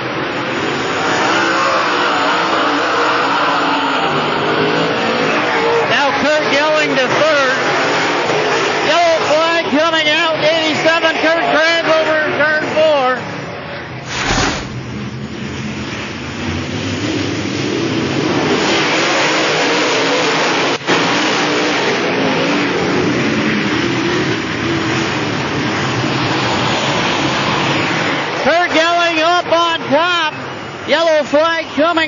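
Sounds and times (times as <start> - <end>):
race car engines at speed: 0.0 - 32.0.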